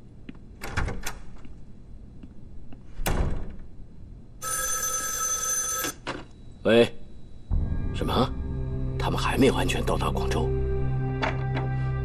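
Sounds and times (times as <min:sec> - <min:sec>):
telephone bell ringing: 0:04.4 - 0:06.0.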